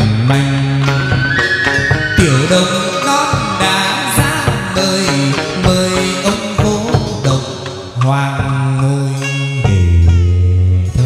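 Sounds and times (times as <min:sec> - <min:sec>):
singer chanting with held notes: 0:00.6 - 0:06.5.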